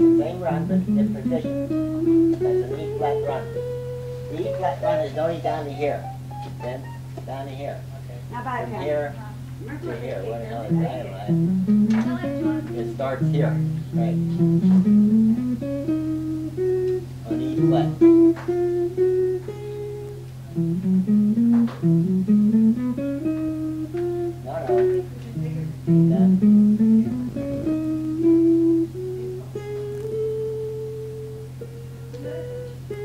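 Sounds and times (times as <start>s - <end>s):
guitar playing scale runs: 0.0s - 33.0s
steady low hum: 0.0s - 33.0s.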